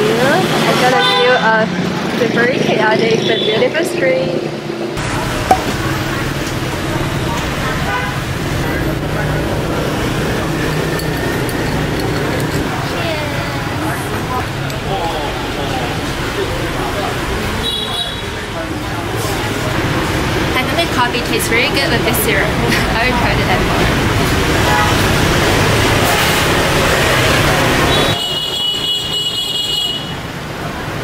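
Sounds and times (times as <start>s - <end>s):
people talking: 0.0s - 25.1s
motorbikes passing: 0.0s - 28.3s
traffic rumble: 0.0s - 31.0s
sharp knock: 5.5s - 5.8s.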